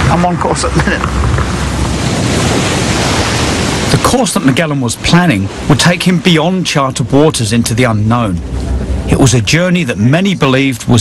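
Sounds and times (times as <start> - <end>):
rushing wind: 0.0 - 11.0
sea water rushing: 0.0 - 11.0
wind on microphone: 0.0 - 11.0.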